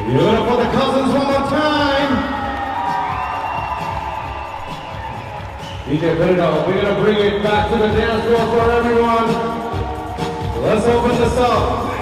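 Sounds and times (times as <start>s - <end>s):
audience cheering: 0.0s - 12.0s
dance music: 0.0s - 12.0s.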